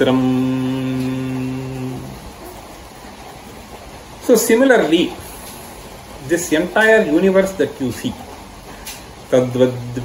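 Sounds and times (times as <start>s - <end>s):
man chanting: 0.0s - 2.2s, 9.3s - 10.0s.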